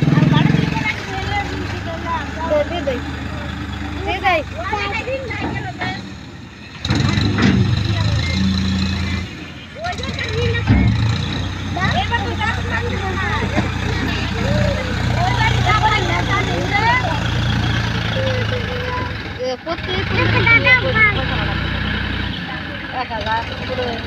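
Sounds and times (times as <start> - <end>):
people talking: 0.0 - 6.2, 7.4 - 24.0
tractor diesel engine running: 0.0 - 24.0.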